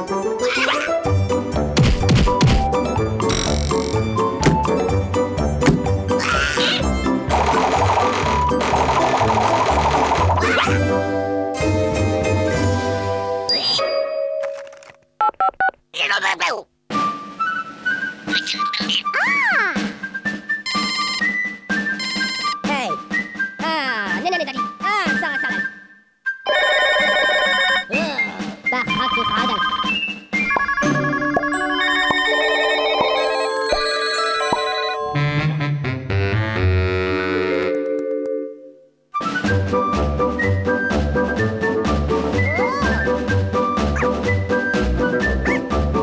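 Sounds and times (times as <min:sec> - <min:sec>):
cartoon character vocal noise: 0:00.4 - 0:01.0, 0:06.2 - 0:06.9, 0:10.4 - 0:11.0, 0:16.0 - 0:16.7, 0:18.3 - 0:20.0, 0:42.5 - 0:43.1
cartoon music cue: 0:06.1 - 0:11.1, 0:27.9 - 0:37.8, 0:42.2 - 0:44.5
two-tone electronic beeps: 0:20.7 - 0:22.6.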